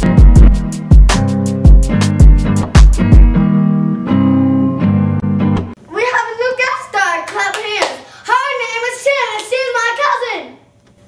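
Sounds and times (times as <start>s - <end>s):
girl's voice: 5.9s - 10.7s
sharp handclaps: 7.3s - 8.0s, 9.4s - 9.6s.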